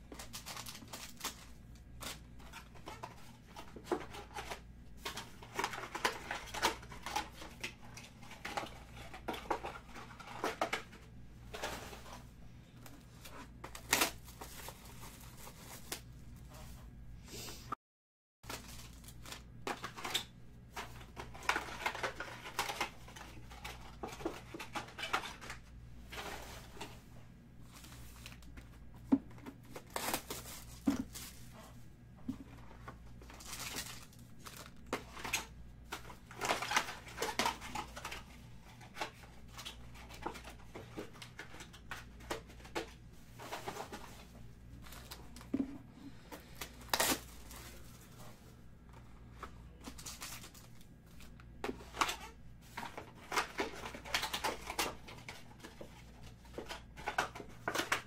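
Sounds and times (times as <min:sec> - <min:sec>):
foil crinkling: 0:00.1 - 0:07.4, 0:18.4 - 0:20.3, 0:29.8 - 0:31.6, 0:33.3 - 0:40.5, 0:46.5 - 0:48.2
faint steady hum: 0:18.5 - 0:58.0.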